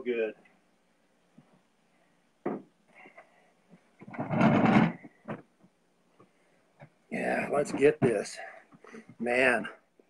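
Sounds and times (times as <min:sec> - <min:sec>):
chair knock: 0:02.4 - 0:02.7, 0:04.0 - 0:05.4
chair legs scraping: 0:04.0 - 0:05.5.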